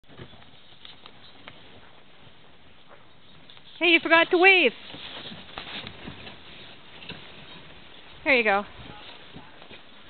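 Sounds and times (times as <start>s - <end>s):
horse hooves on packed snow: 0.0s - 10.0s.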